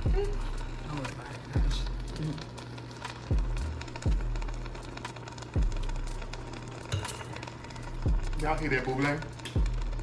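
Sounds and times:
food sizzling in a pot: 0.0 - 10.0.

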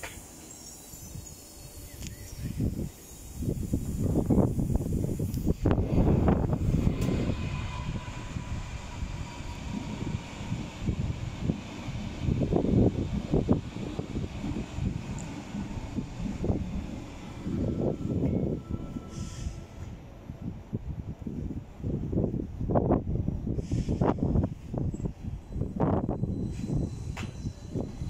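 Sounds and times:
train rumbling over tracks: 0.0 - 28.0.

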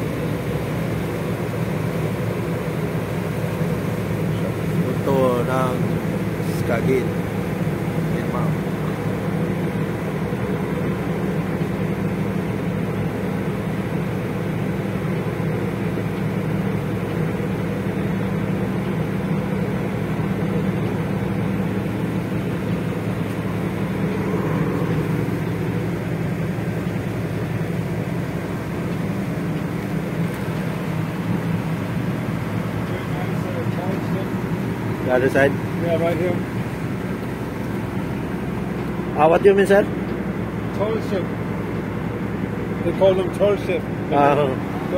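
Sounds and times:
boat engine droning: 0.0 - 44.9.

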